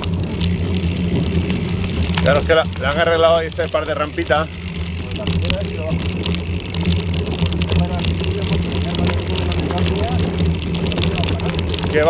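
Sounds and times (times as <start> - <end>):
bike rattling: 0.0 - 12.0
tyres crackling on stones: 0.0 - 12.0.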